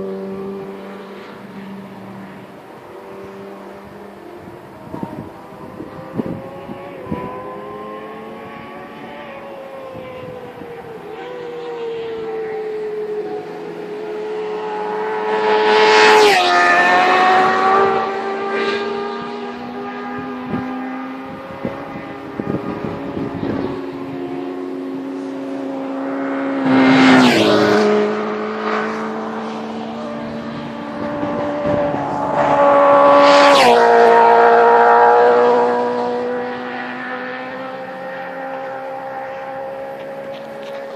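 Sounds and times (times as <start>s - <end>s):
vehicle engine revving past: 0.0s - 40.9s.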